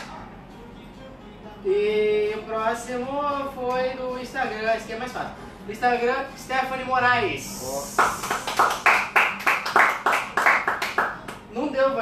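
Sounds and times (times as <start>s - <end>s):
people clapping hands: 7.8s - 11.5s.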